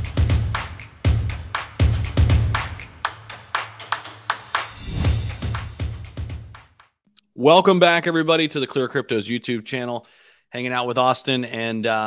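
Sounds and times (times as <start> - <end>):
electronic beat: 0.0 - 6.9
sharp clap-like hits: 0.0 - 7.0
rising swoosh: 4.6 - 5.8.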